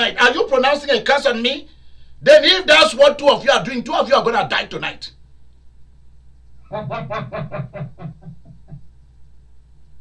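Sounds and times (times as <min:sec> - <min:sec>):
man laughing: 0:06.7 - 0:08.9.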